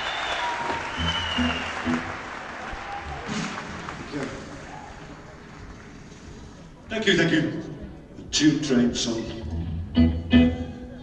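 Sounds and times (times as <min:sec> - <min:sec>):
audience applauding: 0:00.0 - 0:06.1.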